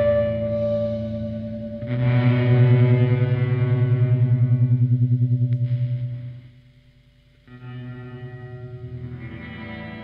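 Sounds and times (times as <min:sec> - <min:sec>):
electric guitar drone: 0:00.0 - 0:06.8, 0:07.5 - 0:10.0.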